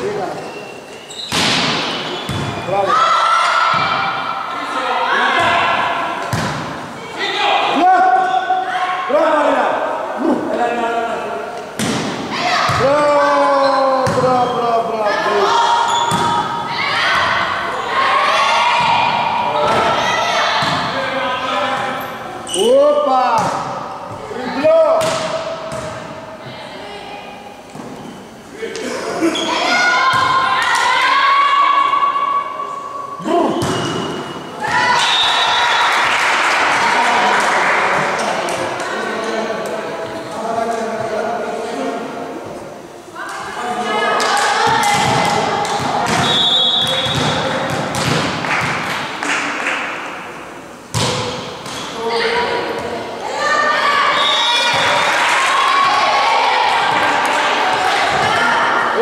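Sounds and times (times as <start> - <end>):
volleyball thudding on gym floor: 6.2 - 6.8, 11.8 - 12.9, 44.7 - 48.9, 50.9 - 51.9
crowd cheering: 34.6 - 38.8, 53.4 - 59.0.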